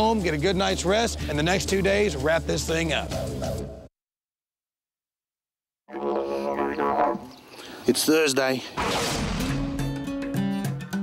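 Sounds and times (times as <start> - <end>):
man talking: 7.8 - 8.8.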